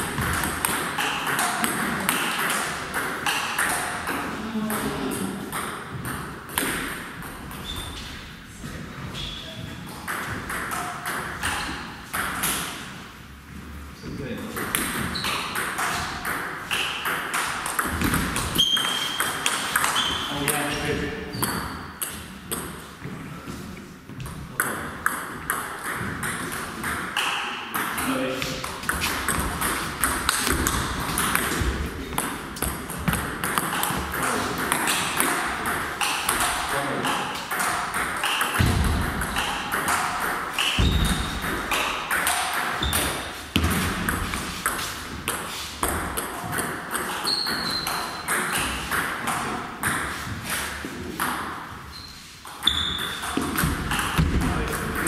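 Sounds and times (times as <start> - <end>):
table tennis balls clicking: 0.0 - 7.7, 9.9 - 12.8, 14.6 - 20.8, 24.2 - 51.6, 52.4 - 55.0
short high squeaks: 18.6 - 22.0, 47.2 - 48.2, 51.9 - 53.3.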